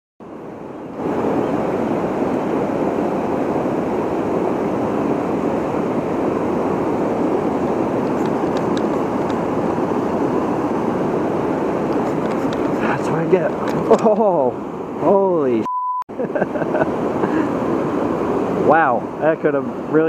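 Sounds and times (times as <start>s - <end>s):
river water rushing over dam: 0.2s - 15.6s, 16.8s - 20.0s.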